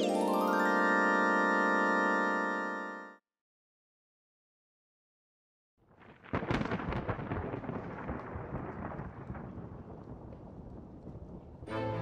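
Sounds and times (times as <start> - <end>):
thunderclap and rumble: 5.9 - 11.7.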